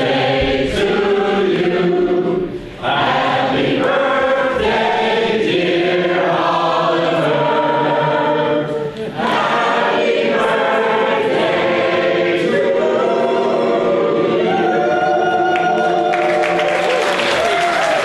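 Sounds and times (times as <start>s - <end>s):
voices singing in harmony: 0.0s - 17.4s.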